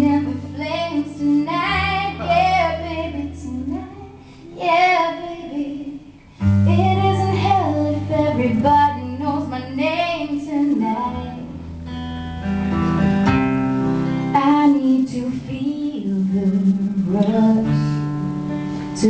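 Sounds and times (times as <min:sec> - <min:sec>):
woman singing: 0:00.0 - 0:11.6, 0:14.3 - 0:19.0
acoustic guitar: 0:00.0 - 0:19.0.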